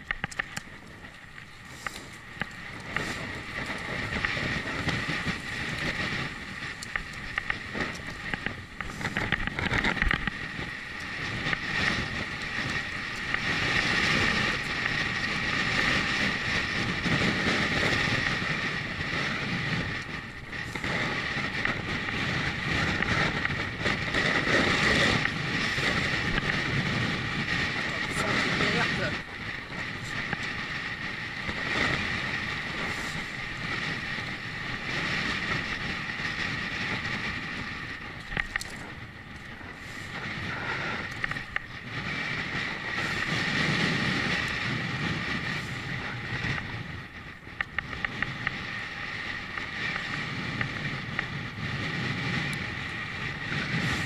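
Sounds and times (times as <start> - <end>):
bicycle riding hum and rumble: 0.0 - 54.0
wind rushing over microphone: 0.0 - 54.0.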